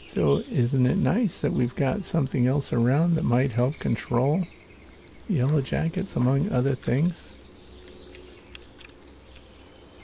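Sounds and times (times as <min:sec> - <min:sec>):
small ticks: 0:00.0 - 0:10.0.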